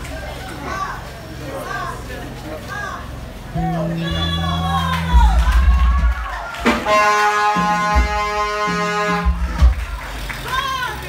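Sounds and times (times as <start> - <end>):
church keyboard music: 6.9 - 9.7.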